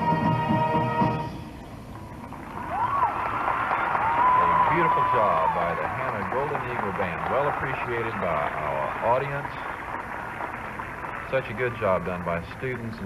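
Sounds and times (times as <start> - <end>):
marching band chord: 0.0 - 1.6
stadium crowd cheering: 2.2 - 13.0.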